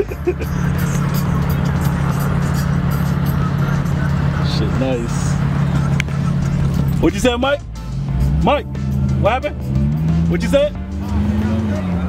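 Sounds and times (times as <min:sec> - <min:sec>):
car driving drone: 0:00.0 - 0:12.0
music playing: 0:00.0 - 0:12.0.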